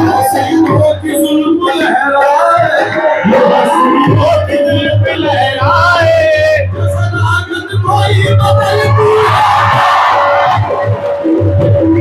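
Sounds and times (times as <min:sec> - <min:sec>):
crowd cheering and shouting: 0:00.0 - 0:06.7, 0:07.9 - 0:12.0
live music with held note: 0:00.0 - 0:12.0.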